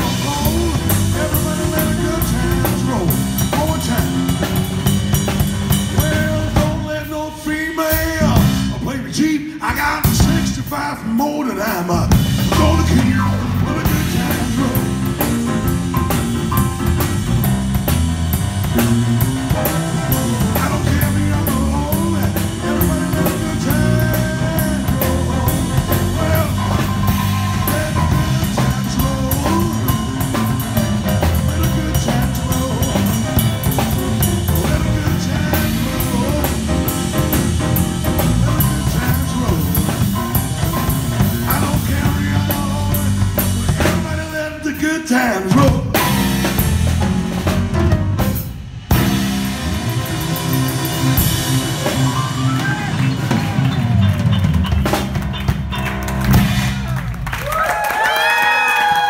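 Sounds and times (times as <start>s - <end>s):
live rock band instrumental: 0.0s - 9.2s, 11.9s - 44.5s, 45.5s - 59.0s.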